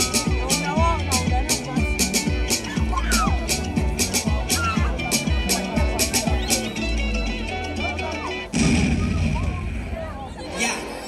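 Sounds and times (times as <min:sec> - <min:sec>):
dance music over speakers: 0:00.0 - 0:11.0
loud explosion-like hit: 0:08.5 - 0:10.3.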